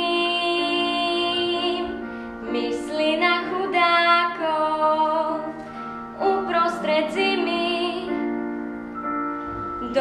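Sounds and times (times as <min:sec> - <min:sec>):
girl singing with vibrato: 0:00.0 - 0:08.5, 0:09.7 - 0:10.0
instrumental accompaniment chords: 0:00.0 - 0:10.0.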